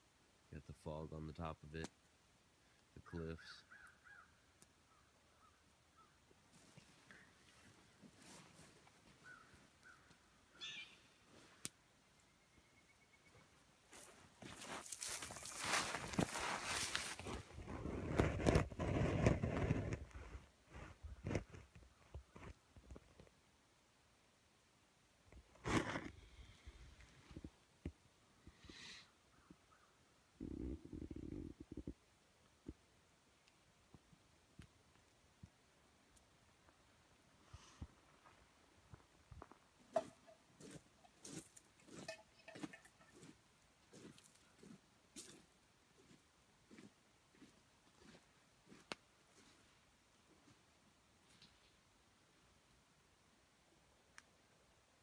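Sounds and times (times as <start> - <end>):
faint bird calls: 3.4 - 6.2, 9.2 - 13.5, 28.8 - 30.2
rustling and handling noise: 6.5 - 10.1, 13.9 - 23.4, 37.6 - 45.4.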